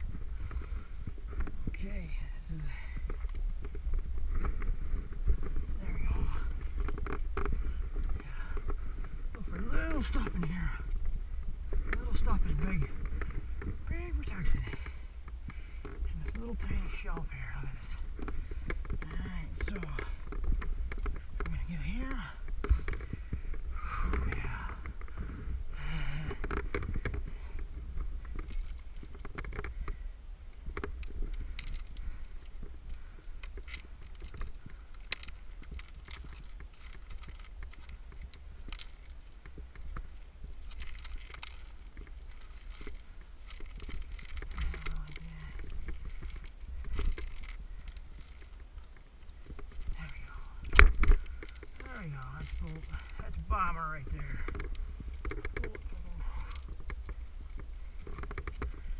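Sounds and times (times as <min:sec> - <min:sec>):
metal climbing gear clinking on rock: 0:00.0 - 0:58.9
wind rumble on microphone: 0:00.0 - 0:58.9.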